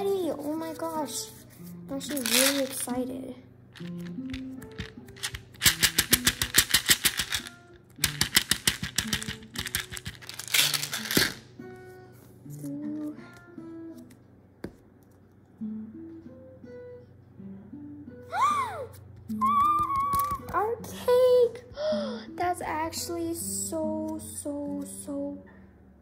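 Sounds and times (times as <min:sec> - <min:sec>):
plucked guitar-like melody: 0:11.5 - 0:14.2, 0:15.5 - 0:25.6.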